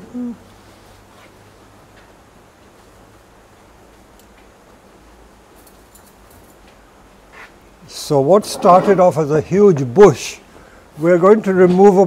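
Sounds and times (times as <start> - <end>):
low hum-like vocal sound: 0.0 - 1.0.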